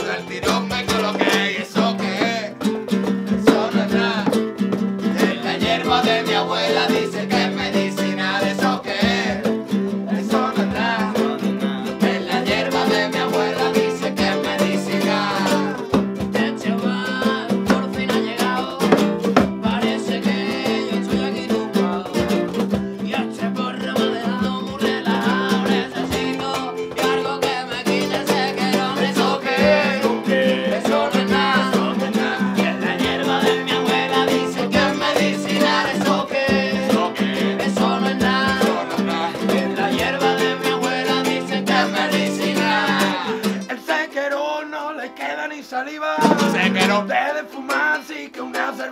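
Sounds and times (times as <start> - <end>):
voices singing along: 0.0 - 22.4, 23.1 - 48.9
hand drum beat: 0.0 - 43.7, 46.2 - 47.1
strummed acoustic guitar: 0.0 - 45.3, 46.0 - 48.9
ukulele: 0.0 - 45.4, 46.2 - 48.9.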